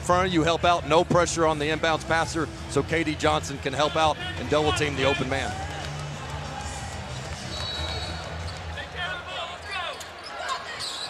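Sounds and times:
crowd rumble: 0:00.4 - 0:09.6.

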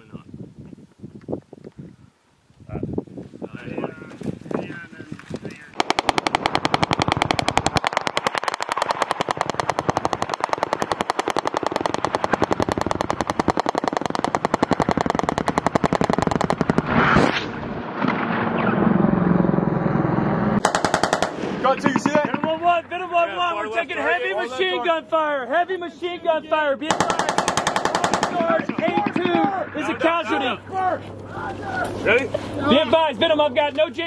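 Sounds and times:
machine gun automatic bursts: 0:05.8 - 0:16.9, 0:20.6 - 0:22.6, 0:26.9 - 0:29.5
low rumble: 0:14.1 - 0:21.8.

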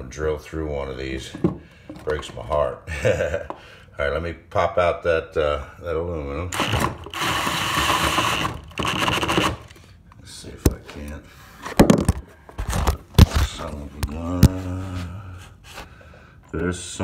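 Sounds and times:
cordless drill with hole saw: 0:06.6 - 0:09.8.

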